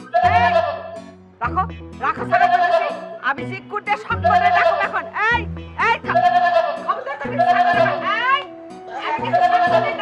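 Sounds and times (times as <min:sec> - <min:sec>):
goat bleating: 0:00.0 - 0:01.0, 0:02.2 - 0:03.2, 0:04.1 - 0:05.1, 0:06.0 - 0:08.2, 0:08.9 - 0:10.0
background music: 0:00.0 - 0:10.0.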